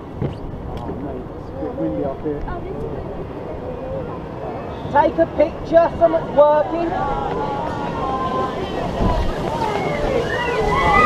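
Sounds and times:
wind buffeting microphone: 0.0s - 11.0s
faint voices: 0.6s - 11.0s.

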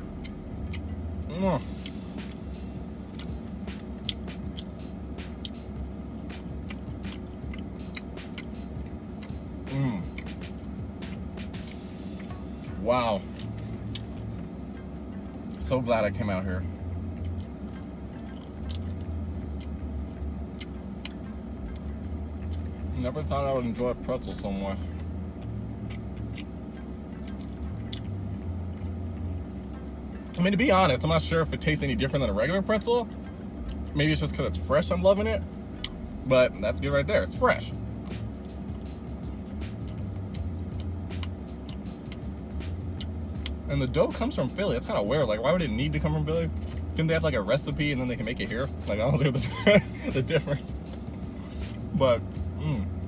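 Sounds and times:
person chewing: 0.0s - 1.0s, 1.6s - 14.3s, 17.1s - 22.7s, 24.9s - 29.4s, 35.8s - 36.2s, 38.0s - 43.6s
low steady hum: 0.0s - 53.0s.

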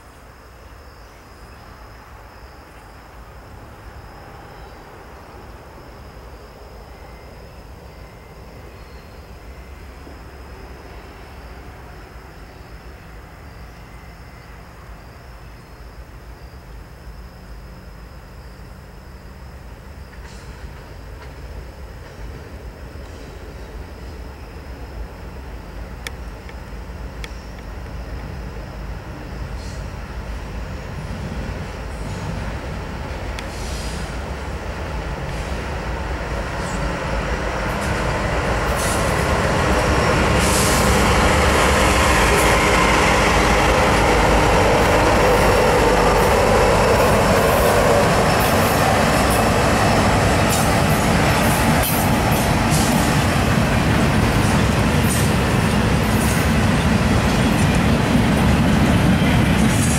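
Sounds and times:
diesel locomotive passing: 0.0s - 59.9s
train wheel squeal: 4.0s - 15.8s, 19.9s - 25.0s, 26.2s - 59.9s
freight cars rumbling by: 29.1s - 59.9s
train wheels clattering: 36.5s - 59.9s.

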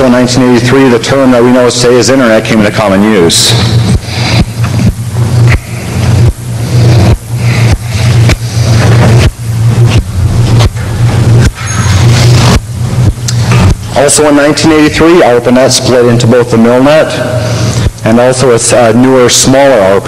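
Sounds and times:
loud steady low hum: 0.0s - 20.0s
rough rushing noise: 3.3s - 14.2s.

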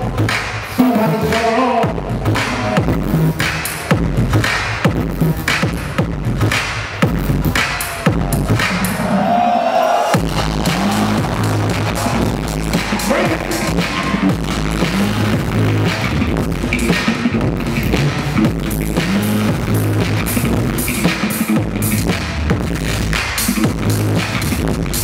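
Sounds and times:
loud dance music: 0.0s - 25.0s.

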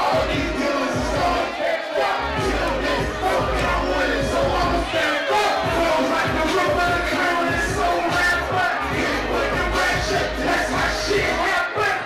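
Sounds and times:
bass-heavy beat: 0.0s - 1.6s, 2.2s - 12.0s
crowd shouting along: 0.0s - 12.0s
rapping into a microphone: 0.0s - 12.0s.

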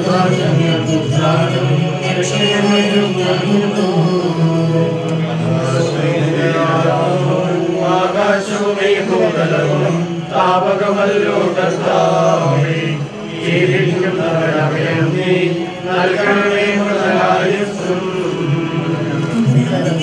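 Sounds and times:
group singing a slow hymn: 0.0s - 20.0s.

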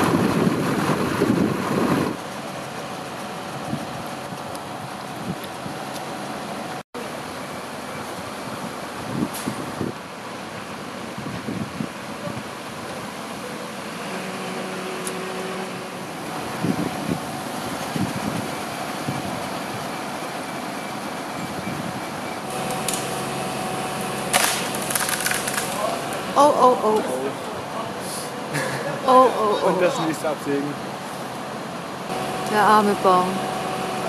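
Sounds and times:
truck engine running: 0.0s - 34.0s.

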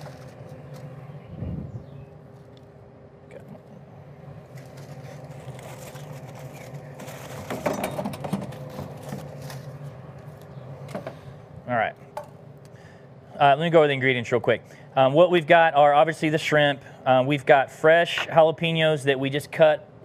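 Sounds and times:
low mechanical hum: 0.0s - 20.0s
clicks and handling rustle: 4.5s - 9.8s.

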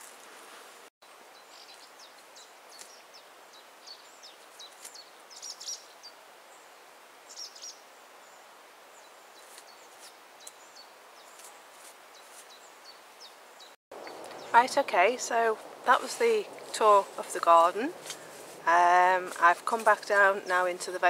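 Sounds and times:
steady outdoor hiss: 0.0s - 21.0s
small birds chirping: 1.3s - 21.0s.

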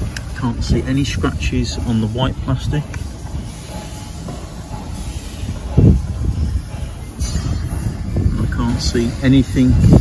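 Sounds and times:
low steady rumbling: 0.0s - 10.0s.

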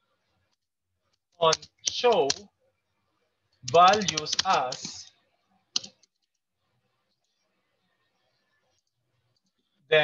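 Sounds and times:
person speaking: 1.2s - 6.4s.

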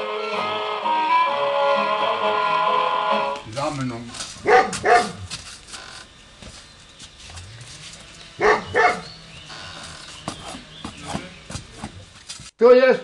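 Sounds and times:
dog barking: 4.4s - 5.3s, 8.4s - 9.1s.

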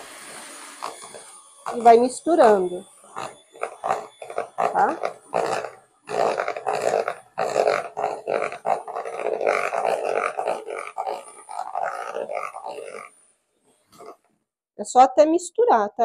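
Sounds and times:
electric hand mixer churning batter: 0.0s - 13.1s.

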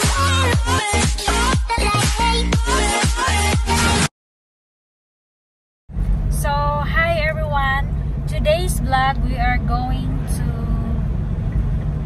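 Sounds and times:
car engine and tyres rumbling: 5.9s - 12.0s
woman talking: 6.3s - 11.0s.

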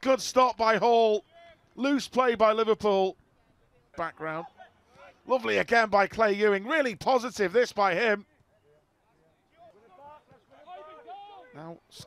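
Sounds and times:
faint voices shouting: 9.5s - 11.6s.

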